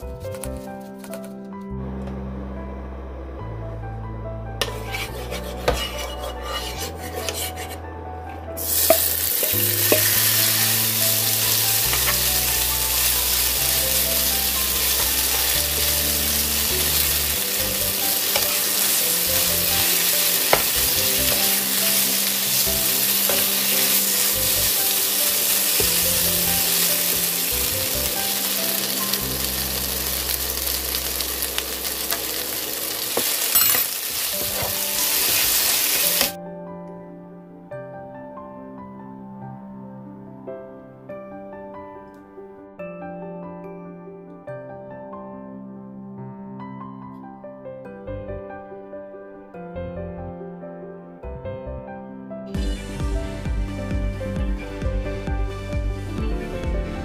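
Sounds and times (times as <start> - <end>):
background music: 0.0 - 57.0
meat sizzling in hot oil: 8.6 - 36.4.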